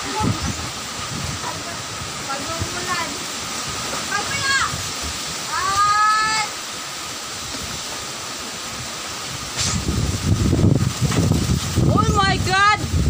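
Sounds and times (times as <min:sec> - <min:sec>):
gusts buffeting microphone: 0:00.0 - 0:06.5, 0:07.2 - 0:13.0
storm wind and heavy rain: 0:00.0 - 0:13.0.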